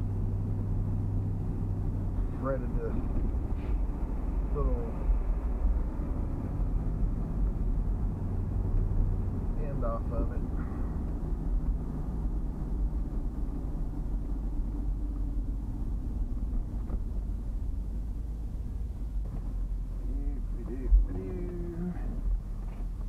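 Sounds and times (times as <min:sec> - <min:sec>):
truck engine rumble: 0:00.0 - 0:23.0
tyres on road: 0:00.0 - 0:23.0.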